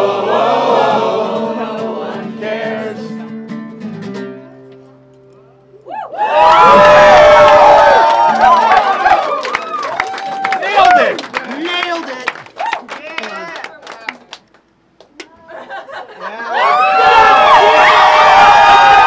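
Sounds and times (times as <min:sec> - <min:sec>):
voices singing held note: 0:00.0 - 0:03.2
strummed acoustic guitar chord: 0:00.0 - 0:05.7
crowd cheering and whooping: 0:05.8 - 0:11.2, 0:12.5 - 0:12.9, 0:16.4 - 0:19.0.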